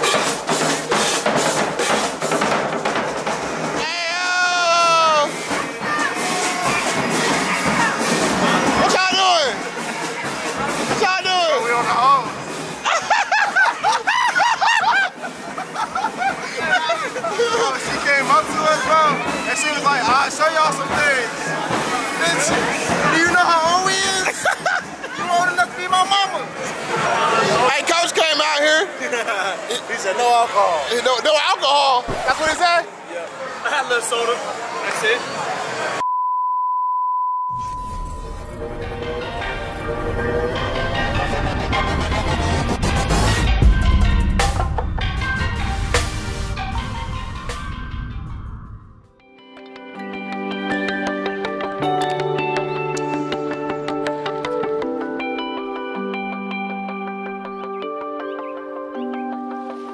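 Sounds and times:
music: 0.0s - 26.3s, 37.6s - 59.9s
person laughing hard: 12.8s - 17.8s, 24.2s - 25.2s
test tone beep: 36.0s - 38.4s.

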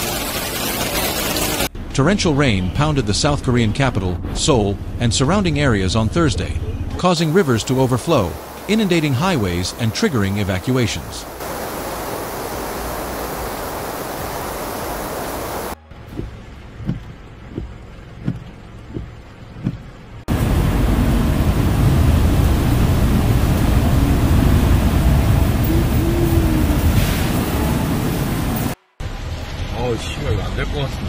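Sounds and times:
floodwater rushing: 7.1s - 15.8s, 16.9s - 28.8s
soft regular knocks: 16.1s - 19.9s.

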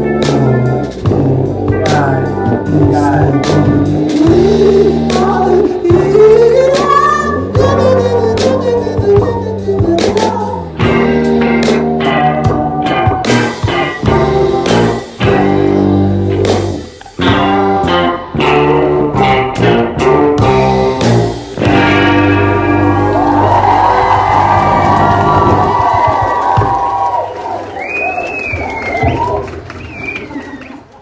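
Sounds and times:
rock-reggae band playing: 0.0s - 27.3s
crowd cheering: 11.6s - 13.9s, 21.6s - 31.0s
rising and falling whistle: 22.9s - 30.8s.

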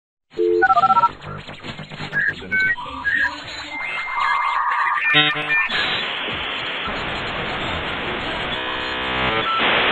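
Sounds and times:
crackling noise: 0.6s - 9.9s
synthesized beeps jingle: 4.0s - 5.8s.

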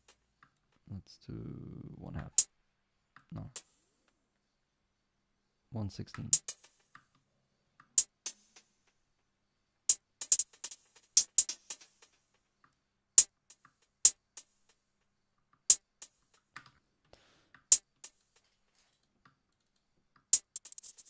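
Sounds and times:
electronic hi-hat hits with delay: 6.4s - 6.9s, 9.9s - 12.2s.

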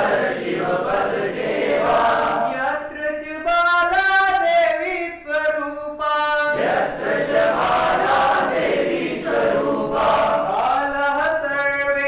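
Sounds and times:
group singing in unison: 0.0s - 2.9s, 6.4s - 11.0s.

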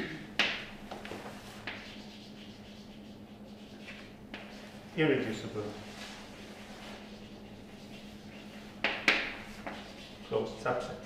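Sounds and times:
low electrical hum: 0.0s - 11.0s
chalk writing on blackboard: 0.4s - 11.0s.

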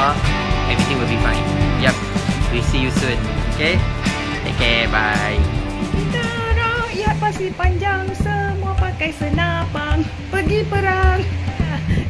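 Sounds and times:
background music with drum beat: 0.0s - 12.0s.

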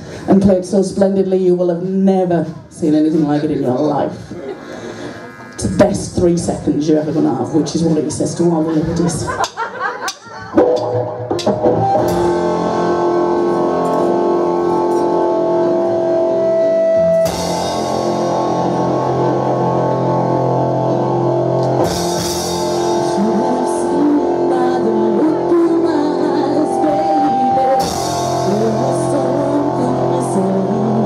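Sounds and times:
live rock band playing: 9.0s - 31.0s.

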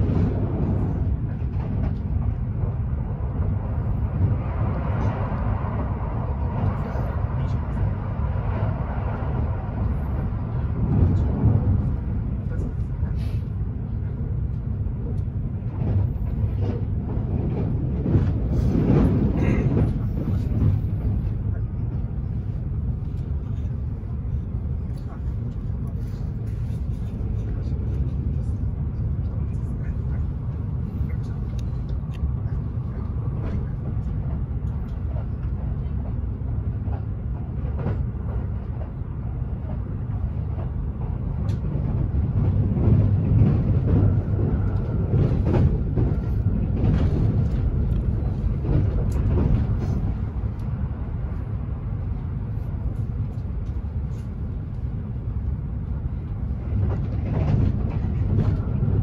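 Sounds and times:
train rumble inside cabin: 0.0s - 59.0s.

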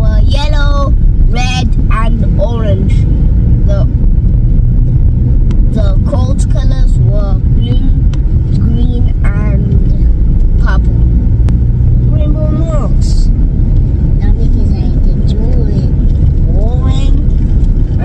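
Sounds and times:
child talking: 0.0s - 3.0s, 3.6s - 3.9s, 5.7s - 11.0s, 12.1s - 13.3s, 14.2s - 17.3s
car engine and tyres rumbling: 0.0s - 18.0s.

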